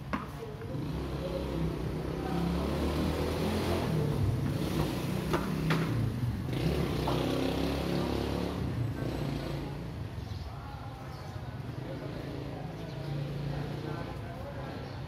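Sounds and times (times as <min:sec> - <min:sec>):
vehicle engine passing by: 0:00.7 - 0:10.1.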